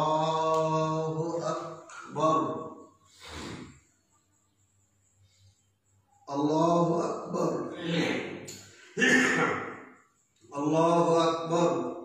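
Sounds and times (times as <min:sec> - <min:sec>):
man chanting a prayer: 0:00.0 - 0:02.8, 0:10.5 - 0:12.0.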